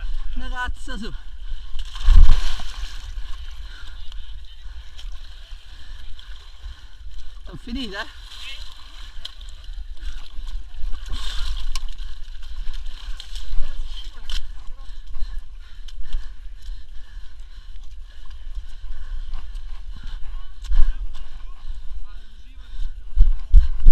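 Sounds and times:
low microphone rumble: 0:01.0 - 0:07.5
muddy water sloshing: 0:01.3 - 0:21.8.

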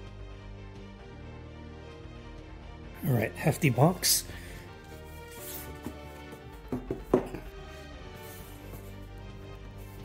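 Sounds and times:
background music sustained notes: 0:00.0 - 0:10.0
cardboard sleeve handling: 0:04.8 - 0:10.0.

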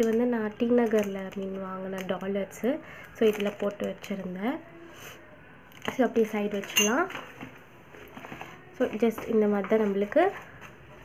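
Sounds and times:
woman speaking: 0:00.0 - 0:04.6, 0:05.9 - 0:07.2, 0:08.8 - 0:10.4
metal jewellery clinking: 0:06.6 - 0:07.2.

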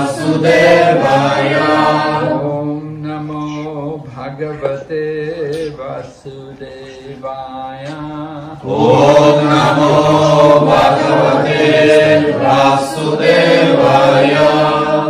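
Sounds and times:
group of voices chanting: 0:00.0 - 0:02.7, 0:08.6 - 0:15.0.

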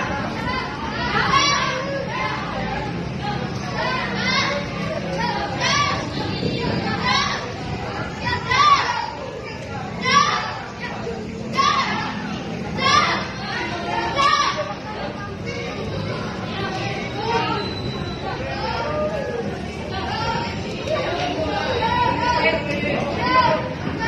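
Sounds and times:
children calling out rhythmically: 0:00.0 - 0:24.0
children chattering: 0:00.0 - 0:24.0.

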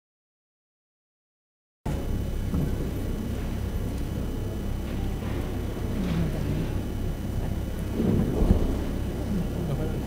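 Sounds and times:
low room rumble: 0:01.9 - 0:10.0
noise haze: 0:01.9 - 0:10.0.

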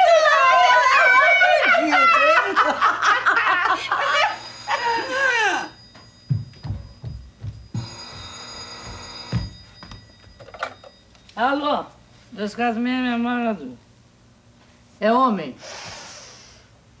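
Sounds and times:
women laughing: 0:00.0 - 0:05.7
telephone ringing: 0:03.8 - 0:12.0
soft low thuds: 0:06.1 - 0:07.9.

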